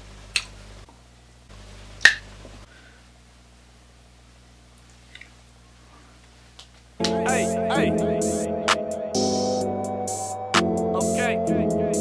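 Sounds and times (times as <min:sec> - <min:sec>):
finger snap: 0:02.0 - 0:02.2, 0:06.6 - 0:07.2.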